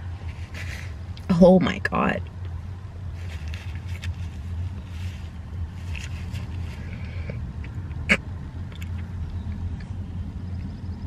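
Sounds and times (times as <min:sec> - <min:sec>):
soft rustles: 0:00.2 - 0:01.0, 0:03.1 - 0:07.3.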